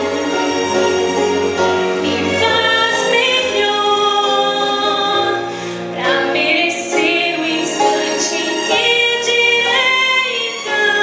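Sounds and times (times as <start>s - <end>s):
musical accompaniment: 0.0s - 11.0s
woman singing into microphone: 6.0s - 11.0s.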